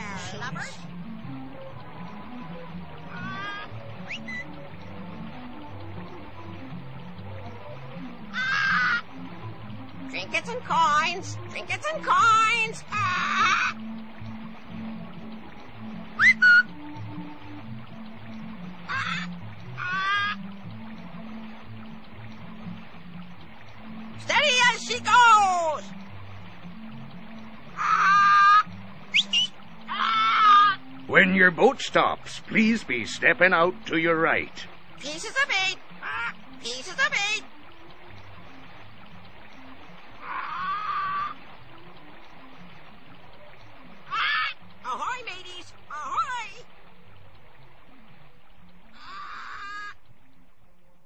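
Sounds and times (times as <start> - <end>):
low pulsing music: 0.0 - 51.0
water trickling: 0.0 - 51.0
parrot squawk-like call: 3.1 - 4.4, 8.3 - 9.0, 13.0 - 13.8, 16.2 - 16.7, 18.9 - 20.4, 27.8 - 30.8, 40.2 - 41.4, 44.1 - 44.6, 49.0 - 50.0
loud whistles: 29.1 - 29.5.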